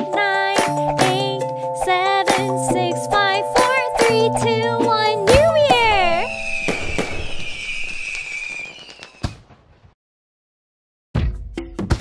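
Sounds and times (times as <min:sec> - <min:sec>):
firework bangs: 0:05.4 - 0:09.9
firework crackling: 0:05.6 - 0:09.6.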